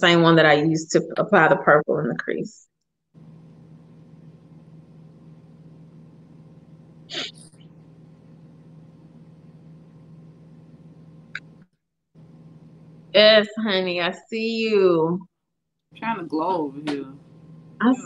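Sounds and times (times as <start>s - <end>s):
low electrical hum and hiss: 3.2s - 11.6s, 12.2s - 15.0s.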